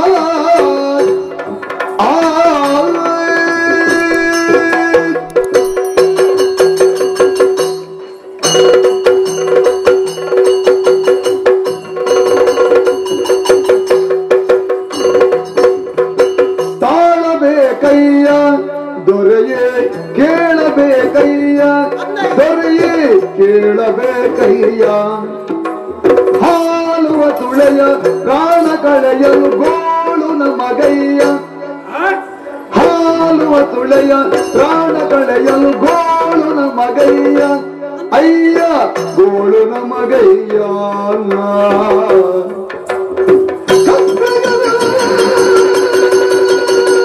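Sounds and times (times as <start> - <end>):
person singing ornamented phrases: 0.0 - 1.3, 2.0 - 5.4, 26.4 - 42.6, 43.7 - 47.0
drum strokes: 0.0 - 47.0.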